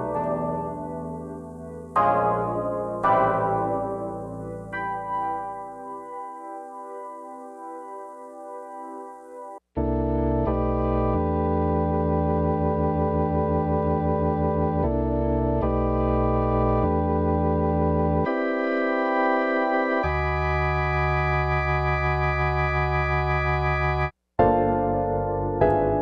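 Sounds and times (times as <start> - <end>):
synth chords held: 0.0 - 24.1.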